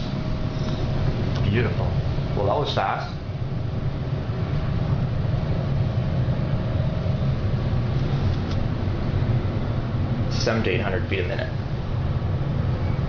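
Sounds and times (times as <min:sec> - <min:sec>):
elevator car low rumble: 0:00.0 - 0:13.0
faint steady hum: 0:00.0 - 0:13.0.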